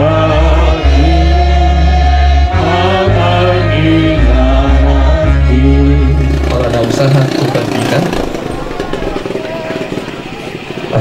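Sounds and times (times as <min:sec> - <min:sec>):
congregation singing a hymn: 0:00.0 - 0:07.1
man's voice: 0:00.0 - 0:08.2
crowd noise: 0:00.0 - 0:11.0.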